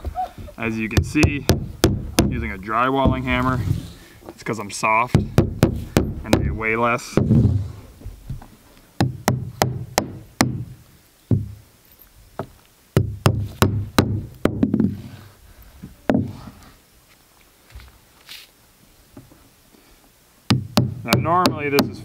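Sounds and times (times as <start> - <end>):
hammer striking nails: 1.0 - 3.4, 5.1 - 7.6, 9.0 - 10.7, 12.4 - 14.9, 20.5 - 22.0.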